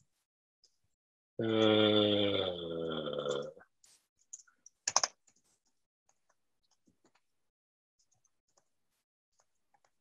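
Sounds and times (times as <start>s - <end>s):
computer keyboard key clicks: 4.9s - 5.1s.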